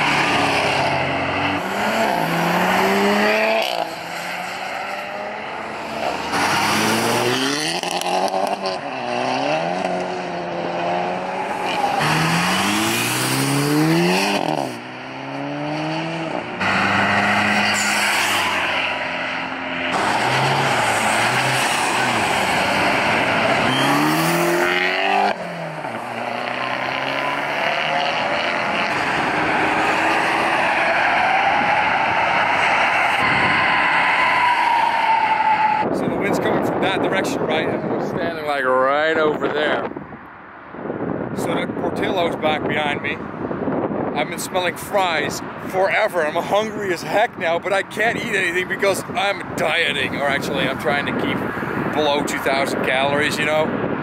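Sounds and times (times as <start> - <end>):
car engines accelerating: 0.0 - 54.0
tyre and road noise: 0.0 - 54.0.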